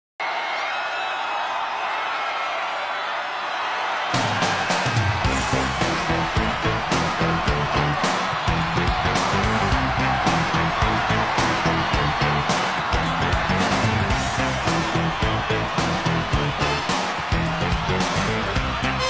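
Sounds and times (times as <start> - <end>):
crowd cheering: 0.2 - 19.0
live band playing: 5.2 - 19.0.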